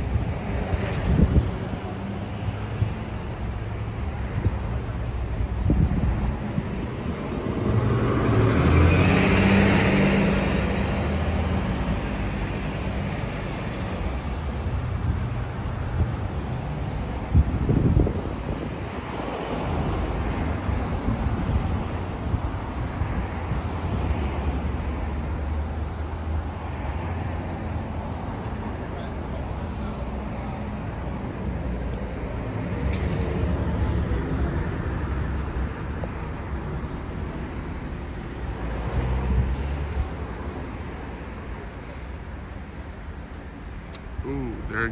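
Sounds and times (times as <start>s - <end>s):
wind buffeting microphone: 0.0s - 3.1s, 4.2s - 9.8s, 14.7s - 24.2s
traffic rumble: 0.0s - 44.9s
vehicle passing: 6.8s - 14.2s.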